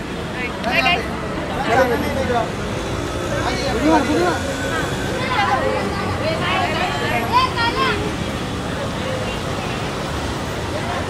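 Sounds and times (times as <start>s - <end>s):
street traffic rumble: 0.0s - 11.0s
people talking: 0.3s - 2.7s, 3.3s - 11.0s.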